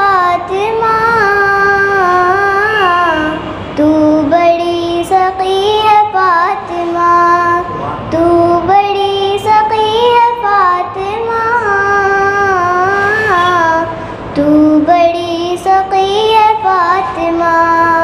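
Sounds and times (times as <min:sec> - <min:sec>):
girl singing into a microphone: 0:00.0 - 0:18.0.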